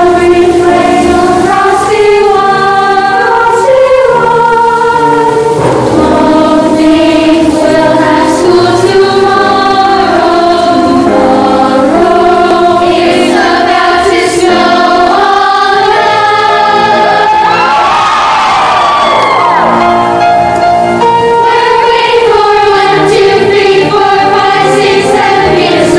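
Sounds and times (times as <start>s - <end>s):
youth choir singing: 0.0s - 20.0s, 21.0s - 25.9s.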